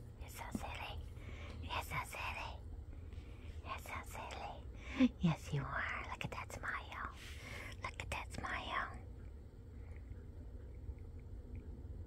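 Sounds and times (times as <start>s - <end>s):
woman whispering: 0.2s - 2.6s, 3.6s - 9.1s.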